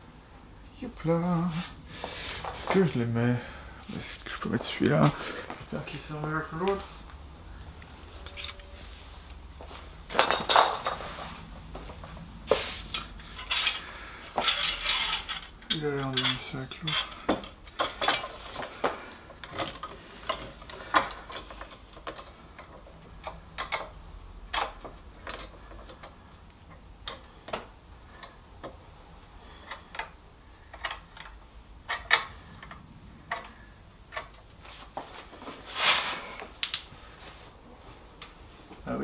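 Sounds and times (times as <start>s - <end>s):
metal clamps clicking and knocking: 10.1s - 11.0s, 14.4s - 18.4s, 19.3s - 28.8s, 29.6s - 34.4s
clamp scraping: 12.5s - 18.7s.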